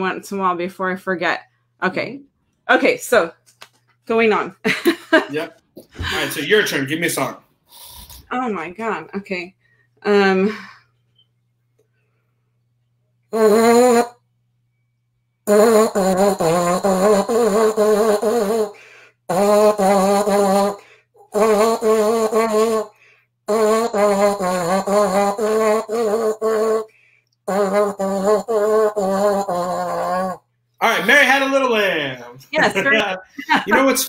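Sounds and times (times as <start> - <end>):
horn mouthpiece buzzing a tune: 13.3 - 14.3, 15.4 - 30.5.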